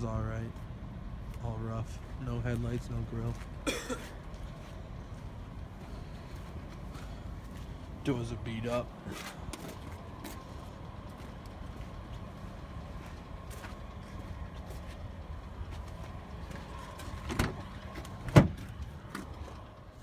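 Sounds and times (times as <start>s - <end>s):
steady low hum: 0.0s - 20.0s
car door clunk: 17.2s - 19.3s.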